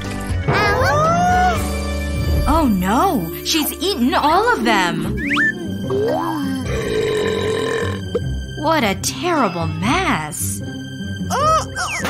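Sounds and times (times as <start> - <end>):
light background music: 0.0 - 12.0
cartoon burp: 5.9 - 8.2.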